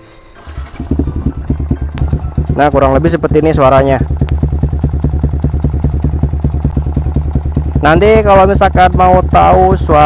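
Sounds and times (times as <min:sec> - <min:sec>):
motorcycle engine idling: 0:00.4 - 0:10.0.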